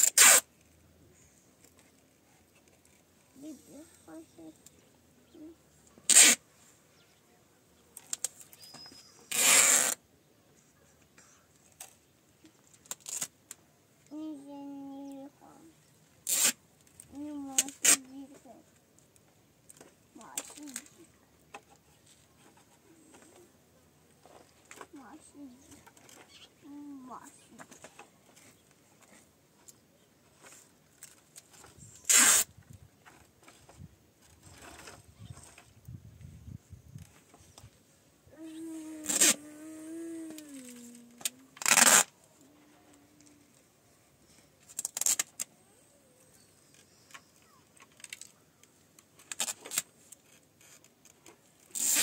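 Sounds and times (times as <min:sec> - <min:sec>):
tape pulled off roll: 0:00.0 - 0:00.6, 0:06.1 - 0:06.4, 0:08.0 - 0:10.0, 0:16.2 - 0:18.0, 0:30.4 - 0:36.0, 0:38.9 - 0:39.4, 0:40.2 - 0:42.2, 0:44.7 - 0:45.5, 0:49.2 - 0:52.0
soft voices murmuring: 0:03.2 - 0:11.8, 0:17.1 - 0:18.8, 0:20.1 - 0:29.7, 0:38.3 - 0:44.6, 0:45.4 - 0:48.6.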